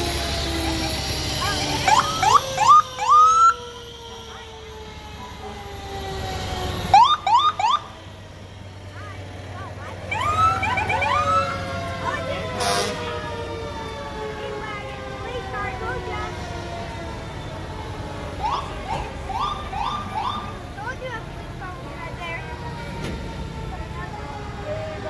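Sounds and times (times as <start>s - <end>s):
sirens whooping: 0.0s - 25.0s.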